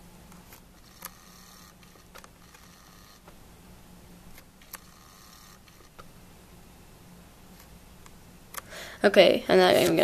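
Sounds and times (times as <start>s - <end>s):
autofocus motor whirr: 0.8s - 3.3s, 4.6s - 6.0s.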